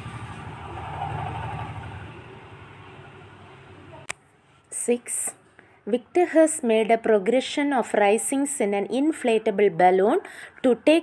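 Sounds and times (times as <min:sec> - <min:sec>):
low rumbling noise: 0:00.0 - 0:04.1.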